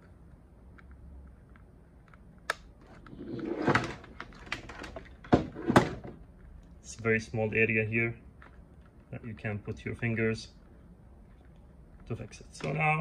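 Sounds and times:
rustling scrape: 3.1 - 4.0.

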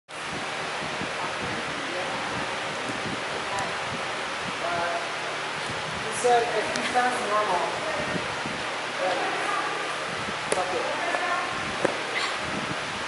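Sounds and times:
room noise hiss in a large hall: 0.1 - 13.0.

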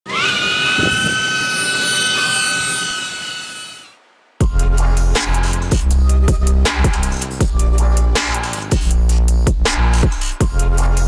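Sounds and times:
drone propellers whining: 0.1 - 4.1.

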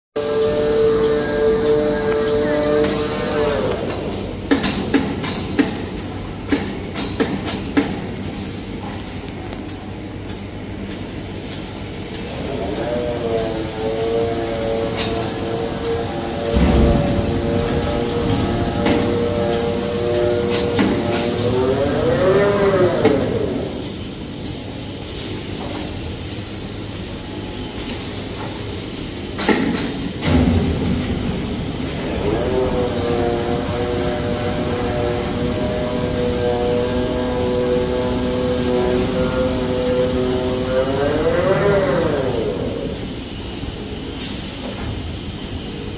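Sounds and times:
motor whine: 0.2 - 4.3, 12.4 - 23.8, 30.3 - 43.0
machine humming: 0.2 - 44.7
machine knock: 16.4 - 21.5.

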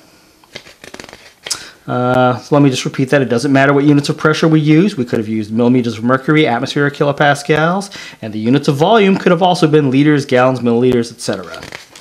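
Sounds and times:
paper rustling: 0.4 - 1.6, 11.2 - 12.0
sharp brushing of paper: 0.5 - 1.5, 11.3 - 12.0.

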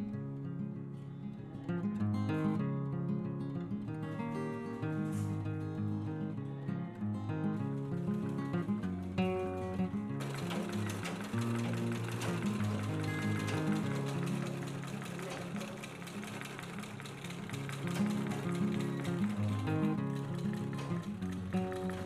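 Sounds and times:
guitar music: 0.0 - 22.0
treadle sewing machine running: 7.4 - 22.0.

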